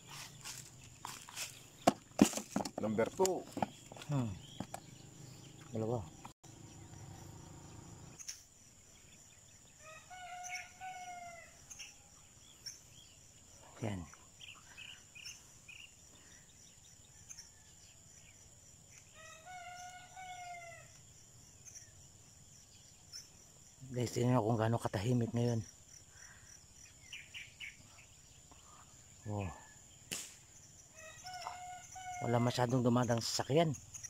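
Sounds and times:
rooster crowing: 0:09.8 - 0:11.6, 0:31.0 - 0:32.4.

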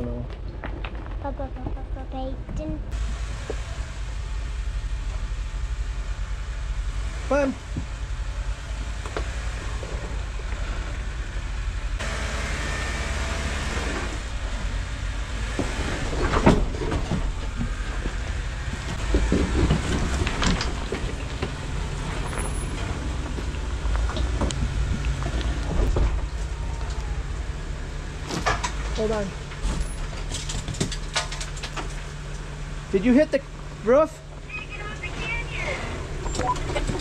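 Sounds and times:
engine rumbling at low speed: 0:00.0 - 0:37.0.

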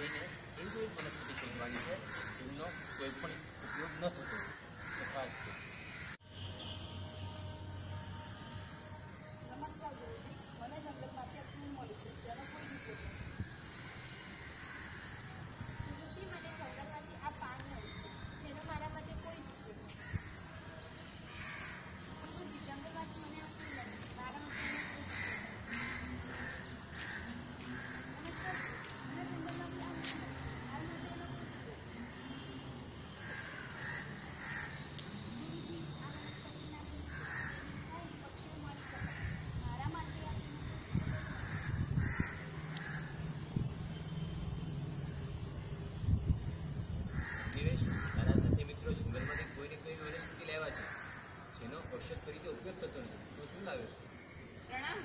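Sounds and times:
harsh cawing bird calls: 0:00.0 - 0:06.4, 0:11.4 - 0:19.2, 0:19.8 - 0:44.0, 0:47.0 - 0:55.0
outdoor background noise: 0:00.0 - 0:55.0.

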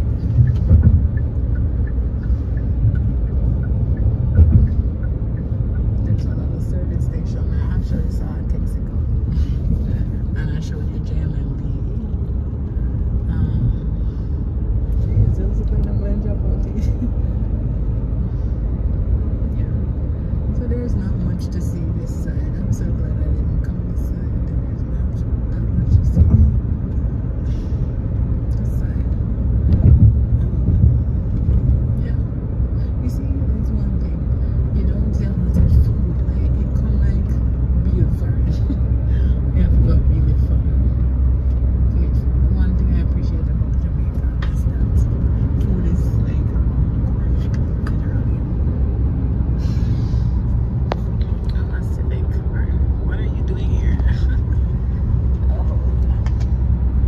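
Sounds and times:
car cabin road and engine rumble: 0:00.0 - 0:57.0.

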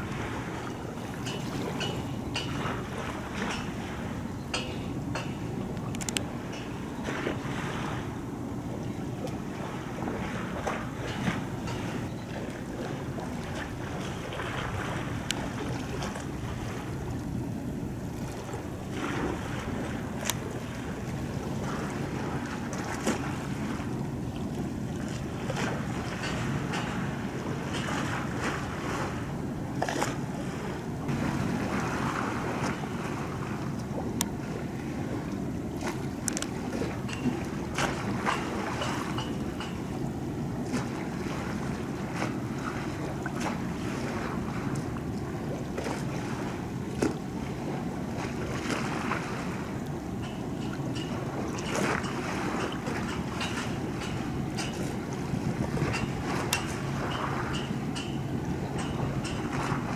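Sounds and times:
low steady ship drone: 0:00.0 - 0:59.9
shoreline water: 0:00.0 - 0:59.9
wind buffeting microphone: 0:00.0 - 0:59.9
small clicks and splashes: 0:04.6 - 0:06.7, 0:35.8 - 0:39.8.

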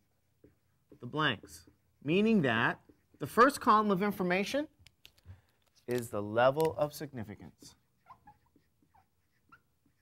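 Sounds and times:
marker squeaking on whiteboard: 0:01.7 - 0:03.7, 0:07.6 - 0:10.0.

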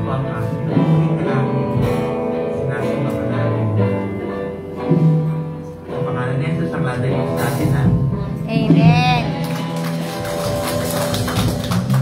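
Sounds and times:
live worship band music: 0:00.0 - 0:12.0.

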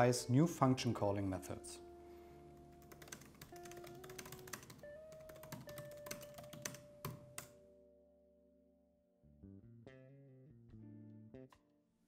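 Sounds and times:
soft background music: 0:00.0 - 0:11.6
typing on laptop keyboard: 0:02.8 - 0:07.6.

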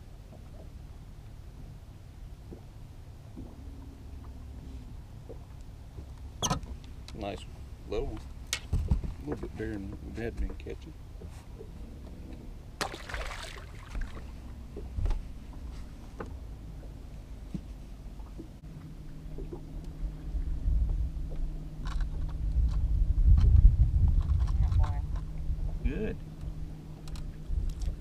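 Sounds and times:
steady low hum: 0:00.0 - 0:28.0
wind rumbling on microphone: 0:03.3 - 0:17.1, 0:18.2 - 0:28.0.

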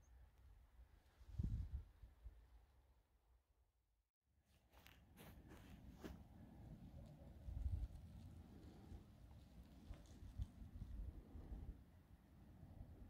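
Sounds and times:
wind buffeting microphone: 0:01.3 - 0:01.9, 0:07.2 - 0:11.8.

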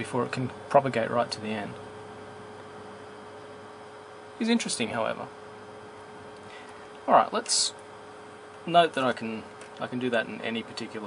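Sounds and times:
electrical hum: 0:00.0 - 0:11.0.

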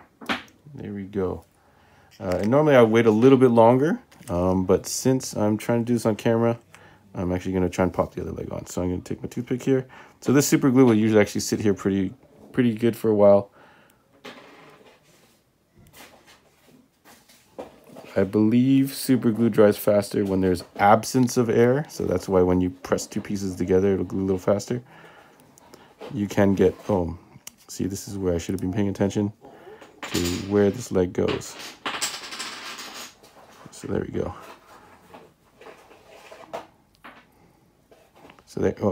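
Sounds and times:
soft rustles and scrapes: 0:14.4 - 0:24.8, 0:25.5 - 0:29.3, 0:33.0 - 0:38.9.

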